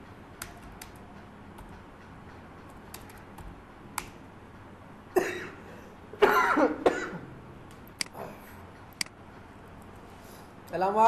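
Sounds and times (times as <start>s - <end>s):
person coughing: 5.2s - 7.3s.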